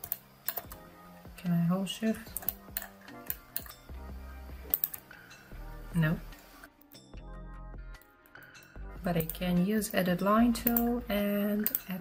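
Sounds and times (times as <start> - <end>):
keyboard clicks: 10.6 - 10.9.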